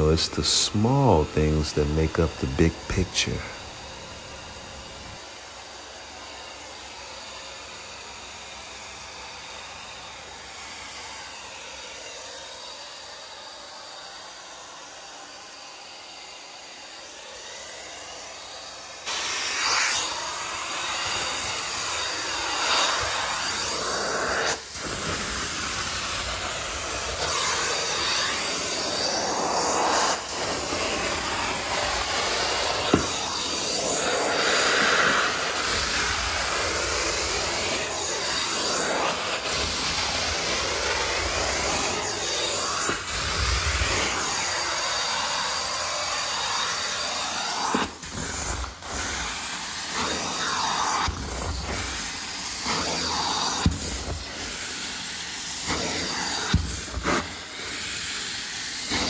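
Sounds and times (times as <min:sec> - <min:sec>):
rushing hiss of suction and spray: 0:00.0 - 0:59.0
vacuum hissing: 0:00.0 - 0:59.0.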